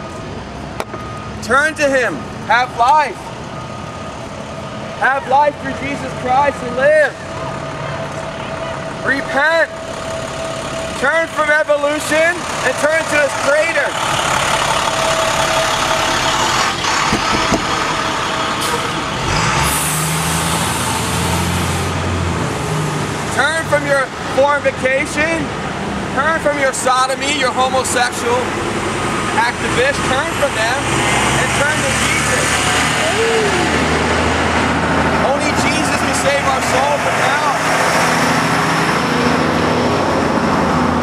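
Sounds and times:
road traffic passing: 0.0s - 41.0s
bus driving past: 3.1s - 41.0s.

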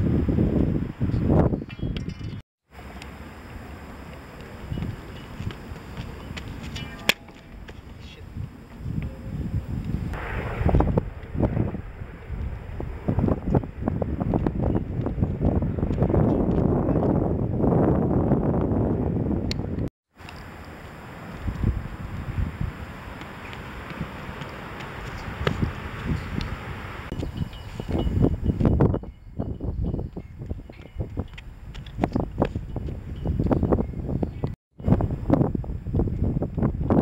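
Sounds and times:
wind buffeting microphone: 0.0s - 2.4s, 3.1s - 19.9s, 21.0s - 37.0s.

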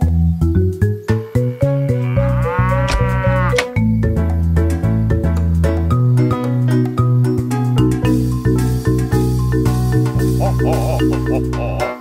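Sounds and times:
children's song music: 0.0s - 12.0s
cartoon cow mooing: 1.1s - 3.7s, 10.4s - 12.0s.

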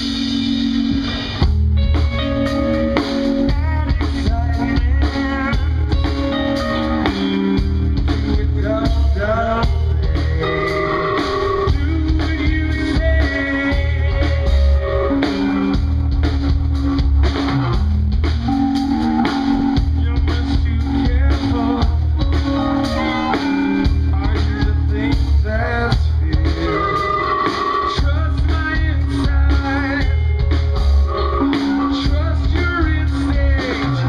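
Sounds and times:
drum kit: 0.0s - 34.0s
electric guitar: 0.0s - 34.0s
keyboard: 0.0s - 34.0s
strong bass pulse: 11.7s - 22.7s.

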